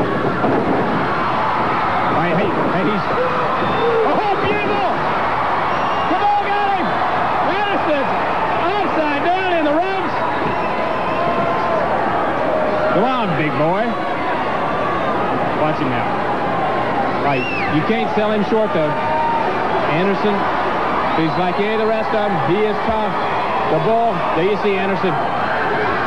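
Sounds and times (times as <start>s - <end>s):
arena crowd noise: 0.0s - 26.0s
people speaking or shouting: 2.1s - 5.1s, 6.0s - 10.3s.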